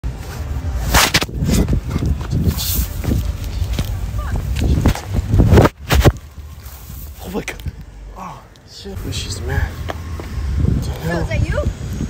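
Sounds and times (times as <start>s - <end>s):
wind rumble on microphone: 0.1s - 8.1s, 9.3s - 12.0s
sharp swish: 0.8s - 1.8s
quick footsteps: 1.0s - 7.1s.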